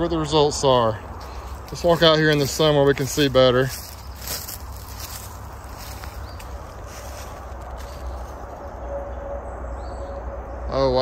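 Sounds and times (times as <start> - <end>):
footsteps through grass and leaves: 0.6 - 8.8.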